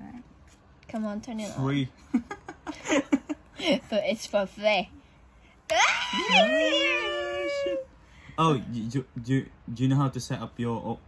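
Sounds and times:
voices going ooh: 5.7s - 7.9s.

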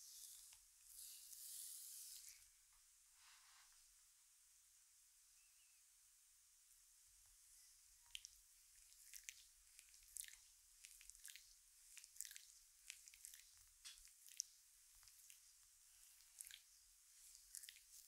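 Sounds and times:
oiled hands kneading skin: 7.3s - 18.0s.

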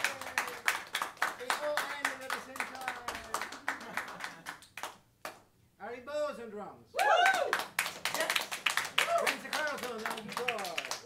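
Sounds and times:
audience clapping: 0.0s - 5.5s, 7.0s - 11.0s
people whooping and cheering: 7.0s - 7.7s, 9.0s - 9.4s.

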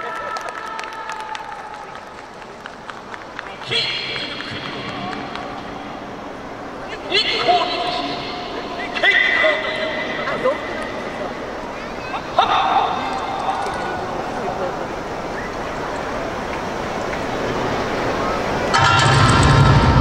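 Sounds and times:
stadium crowd murmur: 0.0s - 19.6s.

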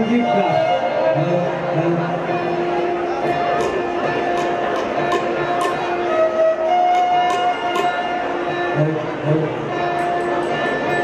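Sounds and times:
bowed string instrument melody: 0.0s - 11.0s.

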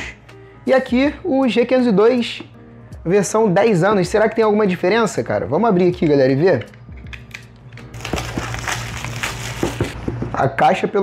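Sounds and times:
cardboard box being opened: 8.0s - 10.0s.

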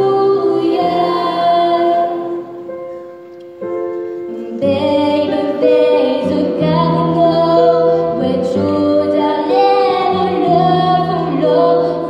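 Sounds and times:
girl singing into microphone: 0.0s - 2.9s, 4.1s - 12.0s.

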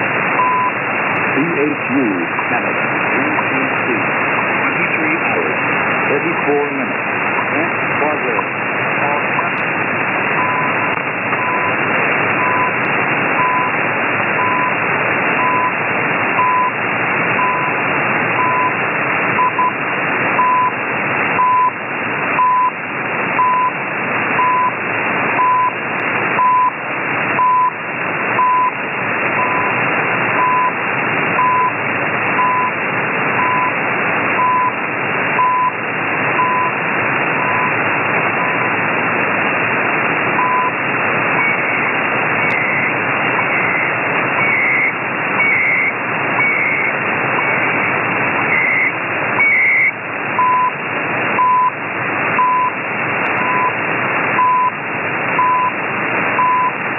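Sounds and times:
shortwave radio hiss: 0.0s - 56.9s
faint data tone: 41.4s - 50.8s.

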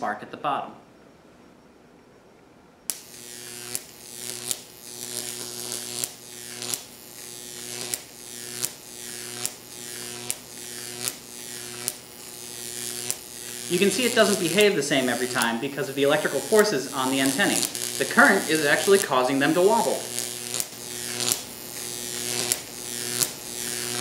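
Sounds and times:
electrical arc buzzing and hissing: 2.9s - 24.0s
sharp electric arc snap: 2.9s - 24.0s.

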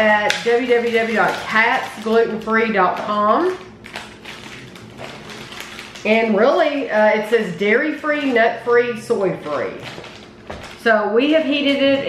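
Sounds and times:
plastic packaging crackling: 0.0s - 10.9s.

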